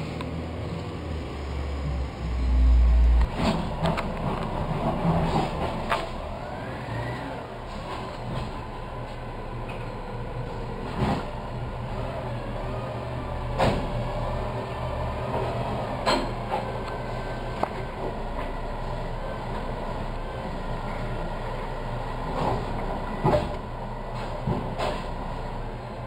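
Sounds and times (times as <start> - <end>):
garbage truck idling: 0.0 - 26.0.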